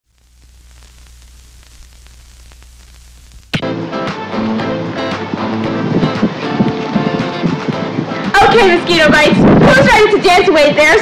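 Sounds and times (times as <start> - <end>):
faint crackles: 0.0 - 3.6
static hiss: 0.0 - 3.6
low hum: 0.0 - 7.2
loud music: 3.5 - 9.0.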